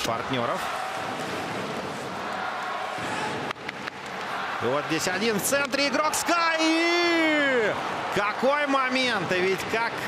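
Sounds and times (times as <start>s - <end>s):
crowd noise in arena: 0.0s - 10.0s.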